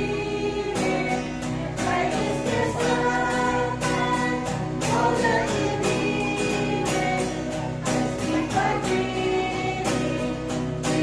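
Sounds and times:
women's choir singing: 0.0 - 11.0.

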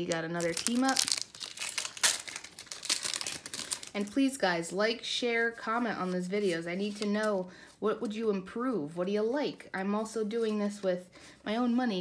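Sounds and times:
foil wrapper crinkling and tearing: 0.0 - 4.4.

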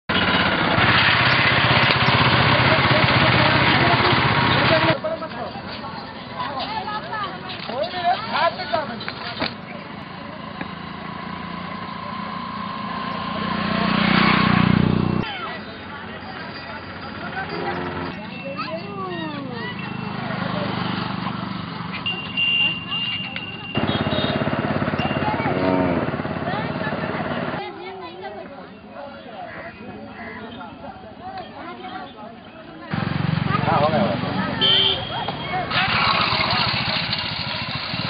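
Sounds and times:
vehicle engine running: 0.1 - 5.0, 9.9 - 15.2, 23.6 - 27.6, 32.9 - 38.0
scattered voices and calls: 15.2 - 36.9.

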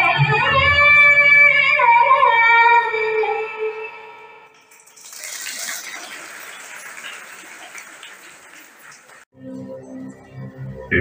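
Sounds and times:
audience clapping: 4.9 - 9.3.

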